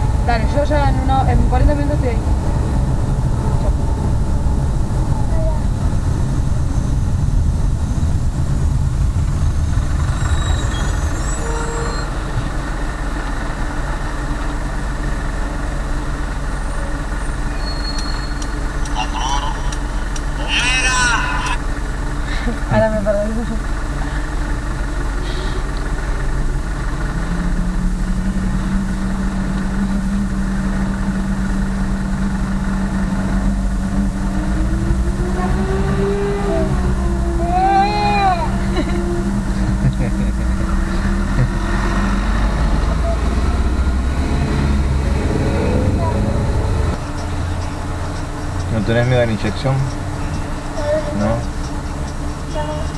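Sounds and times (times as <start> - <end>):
steady low hum: 0.0 - 11.4, 18.4 - 52.9
car engine and road rumble: 0.0 - 52.9
short bursts of voice: 18.9 - 21.6.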